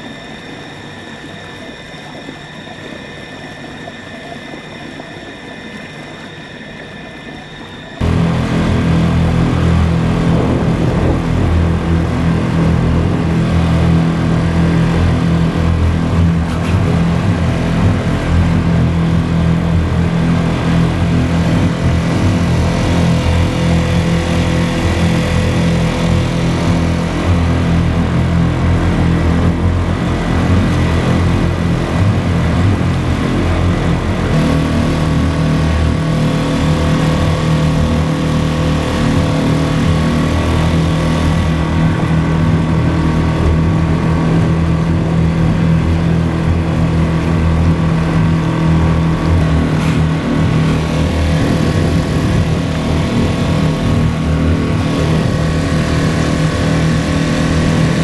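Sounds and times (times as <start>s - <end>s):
small outboard motor running: 0.0s - 58.0s.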